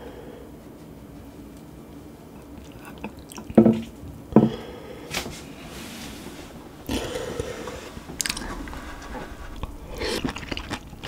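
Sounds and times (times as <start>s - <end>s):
chewing octopus: 6.8s - 11.0s
wet chewing with mouth clicks: 8.1s - 11.0s.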